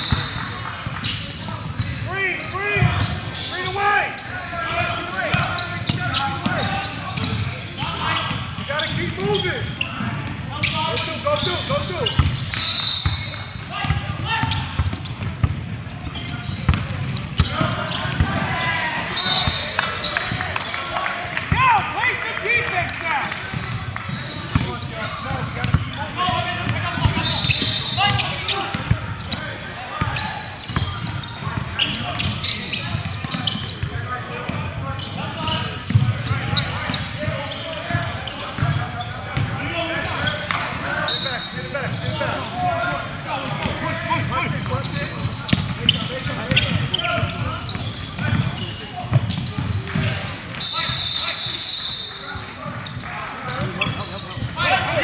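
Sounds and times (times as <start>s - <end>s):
indistinct voices in hall: 0.0s - 55.0s
basketball dribbling: 4.8s - 18.5s, 23.4s - 33.9s, 34.5s - 40.8s, 41.8s - 51.0s.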